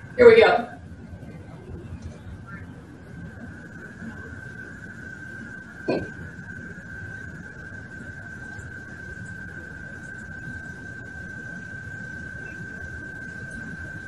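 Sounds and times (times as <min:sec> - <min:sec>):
background hiss and rumble: 0:00.0 - 0:14.0
steady high-pitched tone: 0:00.0 - 0:14.0.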